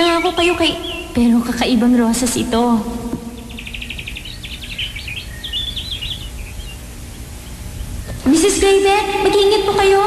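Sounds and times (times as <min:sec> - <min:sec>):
birds chirping and trilling: 0:00.0 - 0:10.0
steady low rumble: 0:00.0 - 0:10.0.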